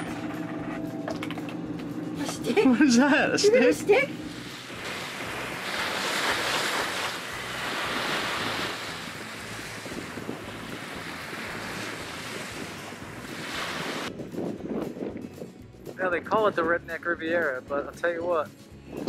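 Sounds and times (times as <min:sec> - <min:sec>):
surf washing onto beach: 0:03.5 - 0:14.1
wind buffeting microphone: 0:03.6 - 0:16.7.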